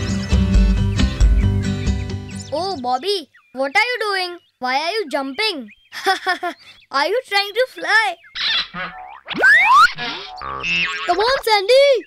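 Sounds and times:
cartoon boing: 8.5s - 11.4s.

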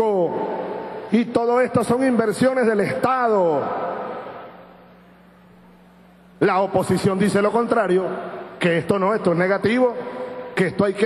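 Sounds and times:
man's amplified speech echoing: 0.0s - 4.6s, 6.4s - 11.0s
low steady hum: 0.0s - 11.0s.

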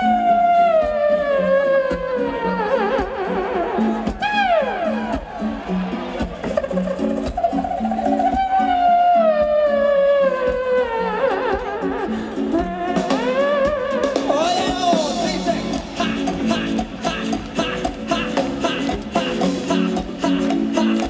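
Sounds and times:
live band music: 0.0s - 21.0s.

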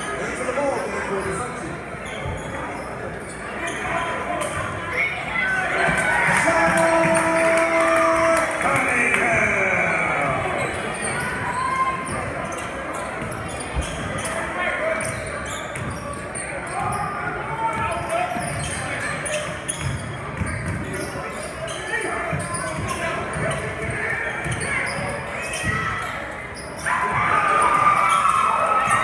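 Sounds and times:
crowd chatter: 0.0s - 29.0s.

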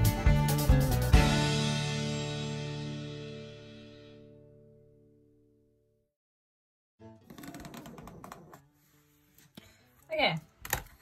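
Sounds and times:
soft guitar music: 0.0s - 5.2s.

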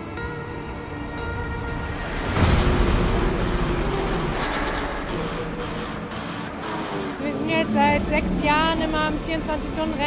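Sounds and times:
music: 0.0s - 10.0s
race car engines at speed: 2.0s - 10.0s.

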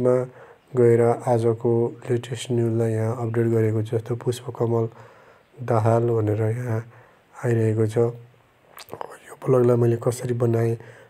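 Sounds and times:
person narrating: 8.8s - 10.9s.

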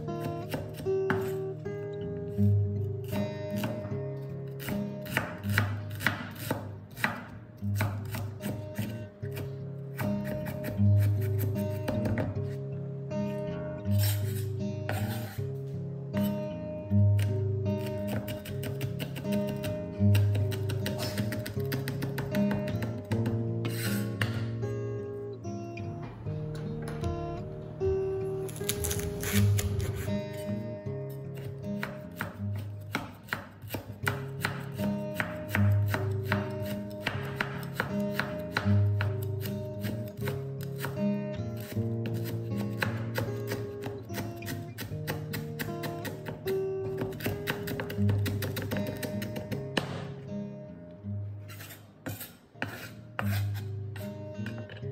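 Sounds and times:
cleaver chopping onion on board: 0.0s - 1.4s, 3.0s - 3.9s, 4.5s - 12.6s, 14.0s - 15.4s, 17.2s - 24.5s, 31.4s - 50.2s, 51.5s - 54.9s.

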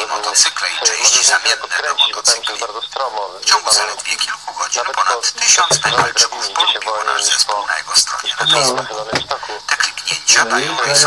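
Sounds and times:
person talking: 5.0s - 6.8s, 8.0s - 11.0s.

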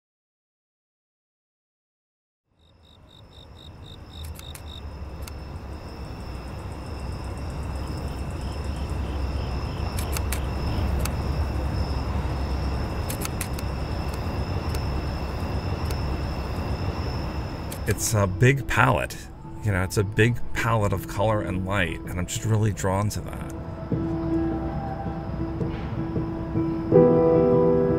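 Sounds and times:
insect trill: 2.5s - 27.9s
distant traffic rumble: 3.2s - 26.9s
sharp clicks: 4.2s - 5.4s, 9.9s - 11.2s, 13.0s - 14.9s.

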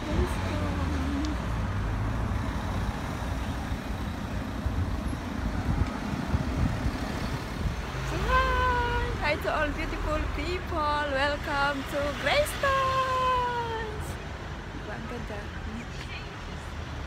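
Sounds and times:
road vehicle rumble: 0.0s - 17.0s.

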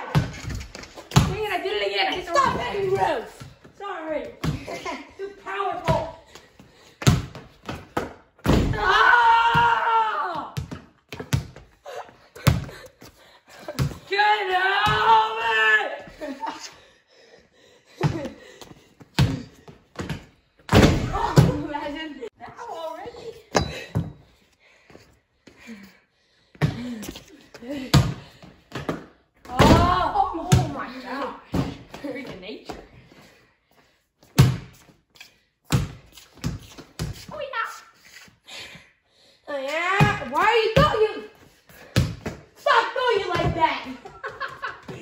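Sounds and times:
basketball bouncing on concrete: 0.0s - 1.5s, 7.0s - 8.8s, 10.6s - 11.8s, 13.6s - 14.1s, 18.0s - 21.7s, 35.7s - 37.3s, 40.0s - 41.0s, 41.7s - 42.5s, 43.2s - 45.0s.

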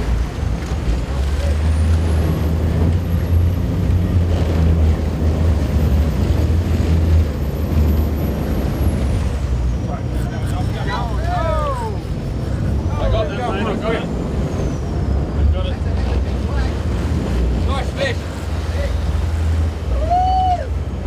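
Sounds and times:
boat engine rumbling: 0.0s - 21.0s
water rushing along hull: 0.0s - 21.0s.

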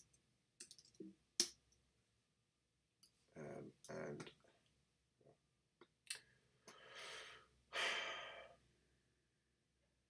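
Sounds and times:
man breathing: 6.7s - 8.6s.

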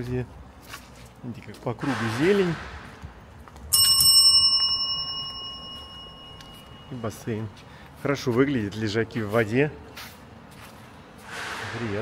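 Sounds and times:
notification bell ding: 3.7s - 7.1s.

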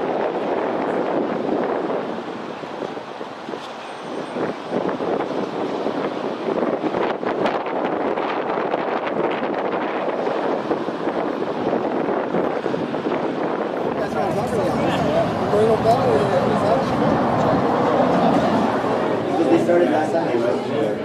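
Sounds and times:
wind on microphone: 0.0s - 19.6s
steady outdoor rushing noise: 0.0s - 21.0s.

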